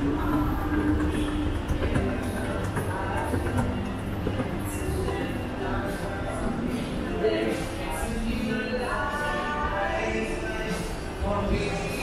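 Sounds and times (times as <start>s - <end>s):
background music: 0.0s - 12.0s
escalator machinery rumbling: 0.0s - 12.0s.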